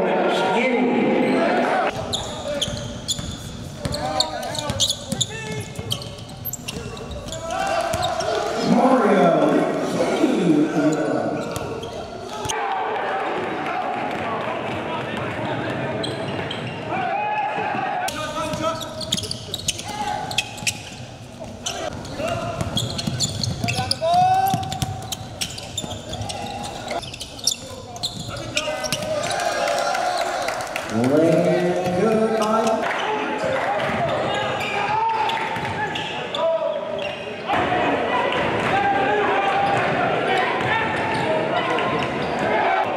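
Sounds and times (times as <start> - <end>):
voices echoing in a hall: 0.0 - 42.9
shoe squeaks: 1.9 - 8.6, 11.0 - 12.5, 18.4 - 29.1.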